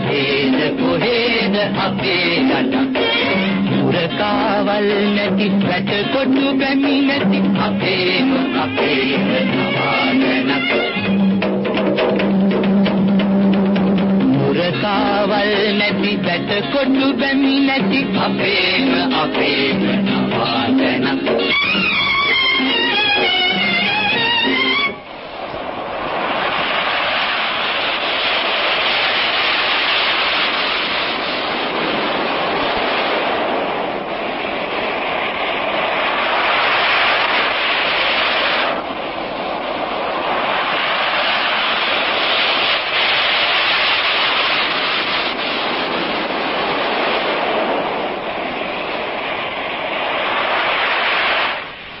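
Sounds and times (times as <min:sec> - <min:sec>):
sea surf rushing: 0:00.0 - 0:52.0.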